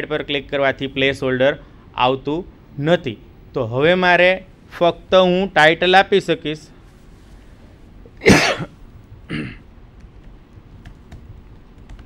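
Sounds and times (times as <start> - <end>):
short cough: 8.2 - 9.6.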